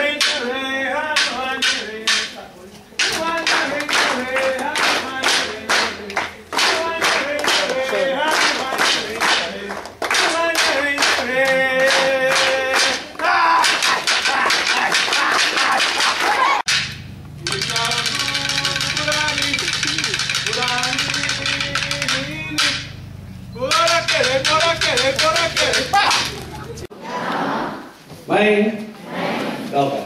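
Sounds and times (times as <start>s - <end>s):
rhythmic clapping: 0.0s - 2.4s, 3.0s - 23.0s, 23.6s - 26.9s
voices singing or chanting: 0.0s - 16.7s, 17.4s - 28.4s
steady hum: 16.6s - 28.1s.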